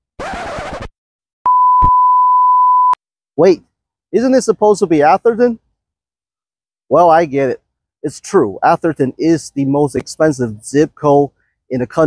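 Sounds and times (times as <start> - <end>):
censor beep tone: 1.5 - 3.0.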